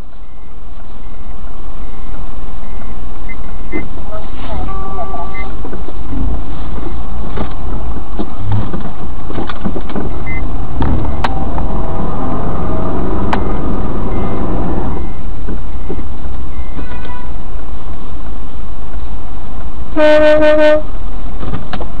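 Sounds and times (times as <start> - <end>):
vehicle and road noise: 0.0 - 22.0
sharp clicks and knocks: 5.6 - 11.7, 21.4 - 21.9.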